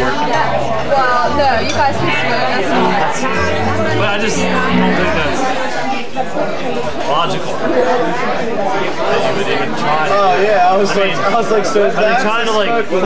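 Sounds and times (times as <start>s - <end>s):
crowd chatter: 0.0s - 13.0s
electric bass guitar low notes: 0.3s - 5.6s.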